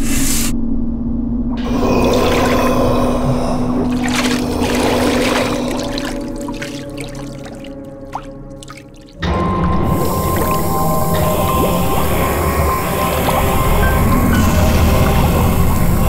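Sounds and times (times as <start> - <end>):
water bubbling and dripping: 1.6 - 14.0
background music score: 1.6 - 16.0.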